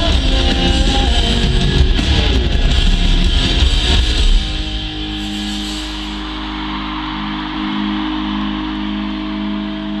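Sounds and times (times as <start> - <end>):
sustained electric guitar chord: 0.0 - 10.0.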